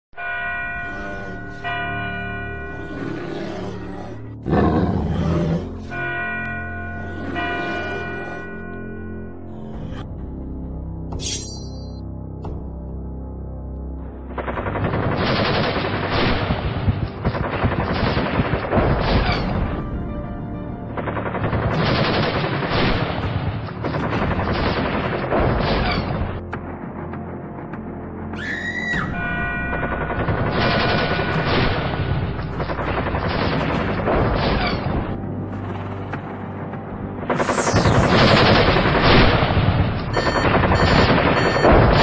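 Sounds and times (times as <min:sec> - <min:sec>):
machine gun fire: 0:29.9 - 0:32.0, 0:40.2 - 0:42.0.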